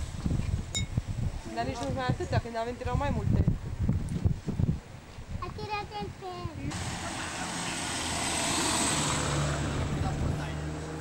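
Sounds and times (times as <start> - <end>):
van driving past: 6.7 - 11.0.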